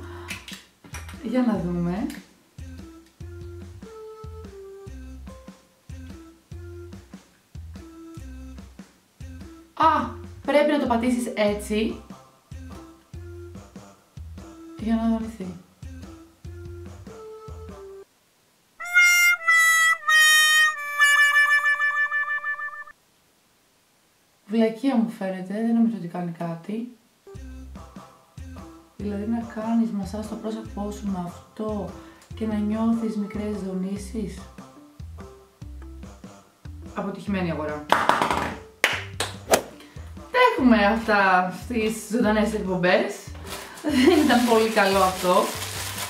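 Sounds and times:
music: 0.0s - 18.1s, 18.8s - 23.0s, 27.2s - 46.0s
sad trombone sound effect: 18.8s - 22.9s.

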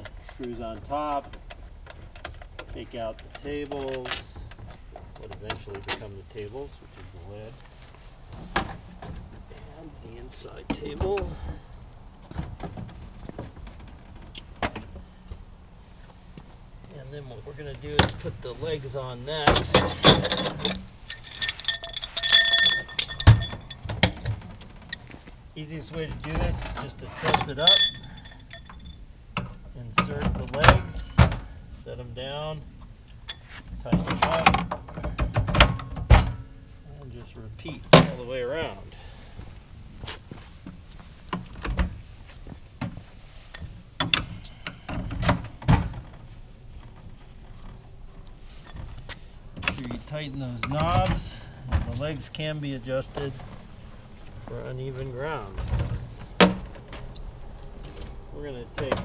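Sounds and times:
metal table legs clinking: 19.6s - 24.3s, 27.2s - 28.9s.

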